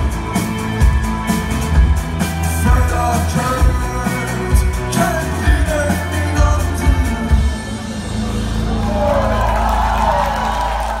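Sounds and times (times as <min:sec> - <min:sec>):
live band music: 0:00.0 - 0:10.2
crowd cheering: 0:07.9 - 0:11.0.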